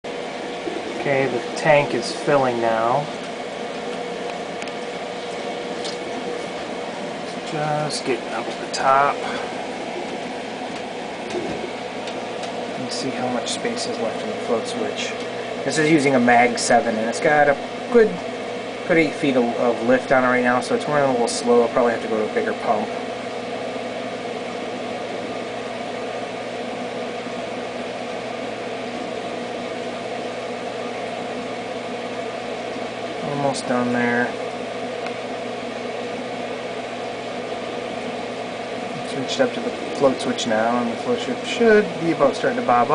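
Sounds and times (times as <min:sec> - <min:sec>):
pump humming: 0:00.0 - 0:42.9
water running into tank: 0:00.1 - 0:42.6.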